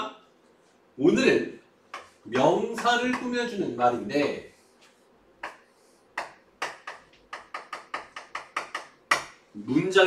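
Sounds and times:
chalk tapping on a chalkboard: 0:01.9 - 0:03.5, 0:04.8 - 0:09.4.

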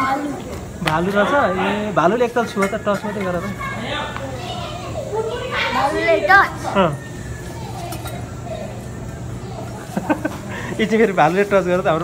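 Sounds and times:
children talking and calling out: 0:00.0 - 0:12.0
steady low hum: 0:00.0 - 0:12.0.

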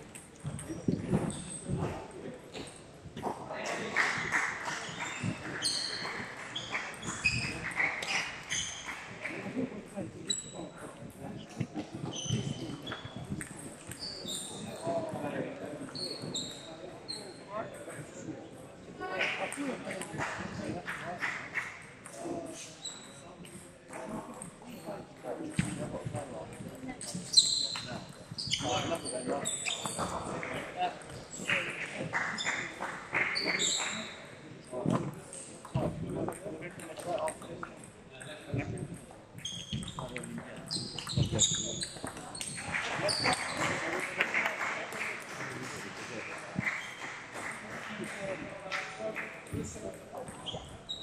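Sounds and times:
indistinct voices in a hall: 0:00.0 - 0:51.0.

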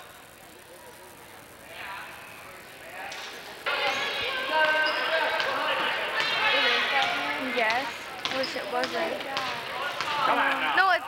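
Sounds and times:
spectators' voices: 0:00.0 - 0:11.0
basketball bouncing on wooden floor: 0:06.2 - 0:10.3.

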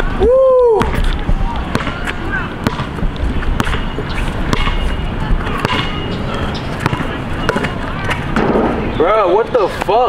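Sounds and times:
basketball bouncing on hard court: 0:00.8 - 0:06.1, 0:06.8 - 0:08.8.

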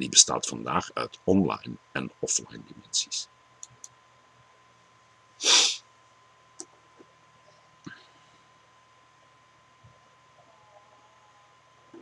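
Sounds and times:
man's sharp burst of breath: 0:05.4 - 0:05.8.

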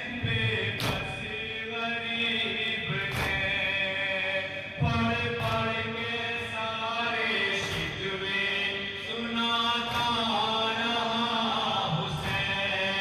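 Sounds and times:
men chanting a lament: 0:00.0 - 0:13.0.

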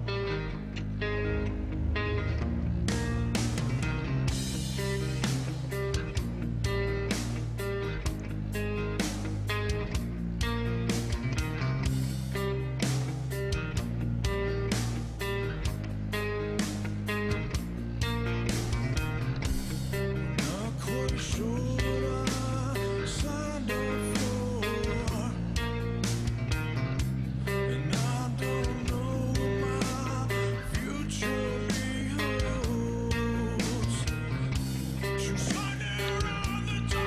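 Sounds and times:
rock band music: 0:00.0 - 0:37.0.

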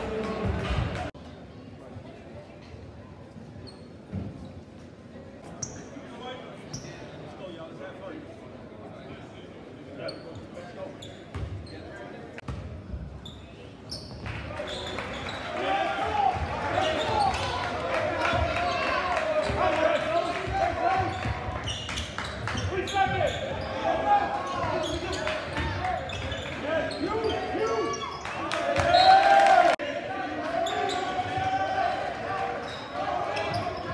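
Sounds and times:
crowd talking and shouting: 0:00.0 - 0:02.5, 0:13.5 - 0:33.9.

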